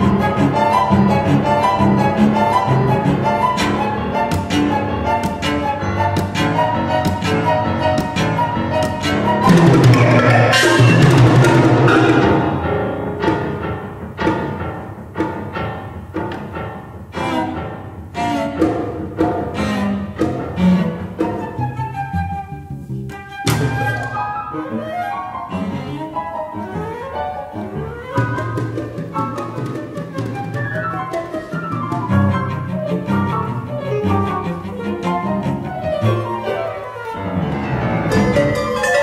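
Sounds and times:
chamber ensemble playing: 0.0 - 13.7, 23.5 - 39.0.

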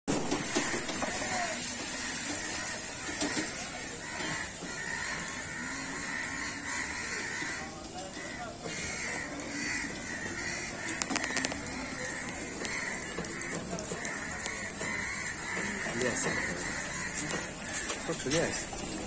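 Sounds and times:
crows cawing: 0.1 - 19.0
steady background noise: 0.1 - 19.0.

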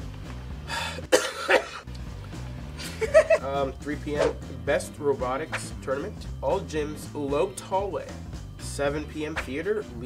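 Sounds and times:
quiet background music: 0.0 - 10.0
young man coughing: 1.0 - 1.9.

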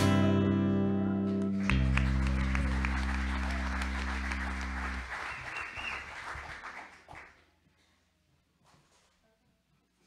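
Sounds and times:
congregation applauding: 1.4 - 7.5.

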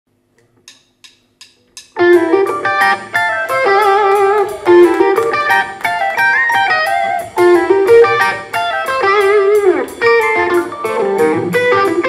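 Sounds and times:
faint amplifier hum: 0.1 - 12.0
drumsticks clicking together: 0.4 - 2.0
electric guitar: 1.9 - 12.0.

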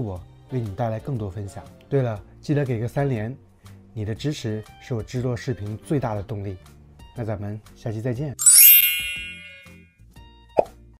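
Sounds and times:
bright chime: 8.4 - 9.8.

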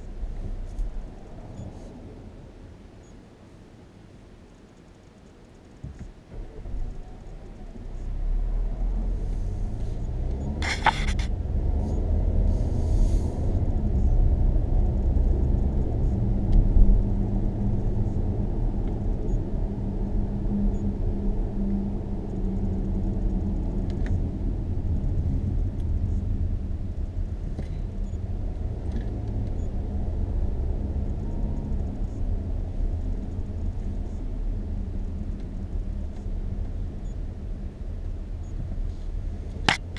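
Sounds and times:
car engine and tyre rumble: 0.0 - 39.9.

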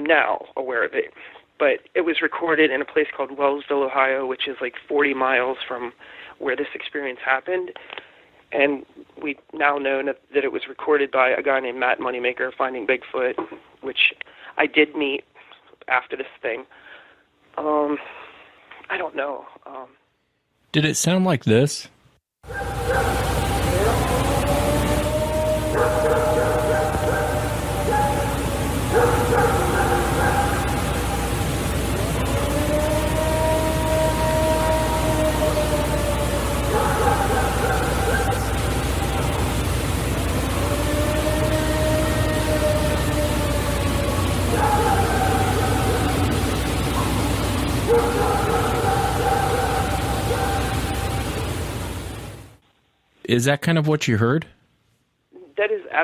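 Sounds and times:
recording hiss: 0.0 - 56.0
long wailing howls: 22.5 - 51.7.

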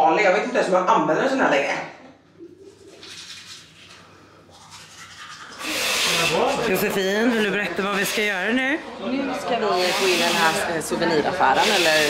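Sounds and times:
toothbrush scrubbing teeth: 2.7 - 8.4, 11.6 - 12.0.

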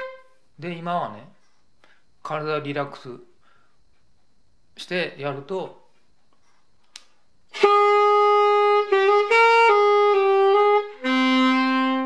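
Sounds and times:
saxophone playing smooth phrase: 0.0 - 0.3, 7.5 - 12.0.

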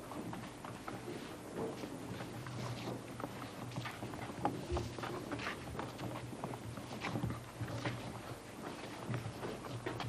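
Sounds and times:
footsteps on stage floor: 0.0 - 10.0.

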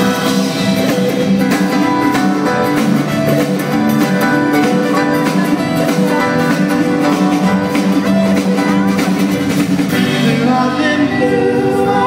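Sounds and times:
electric guitar: 0.0 - 12.0
piano: 0.0 - 12.0.

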